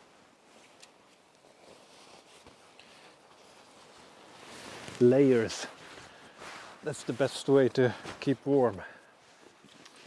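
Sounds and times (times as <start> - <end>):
jacket fabric rustling: 0.4 - 7.3.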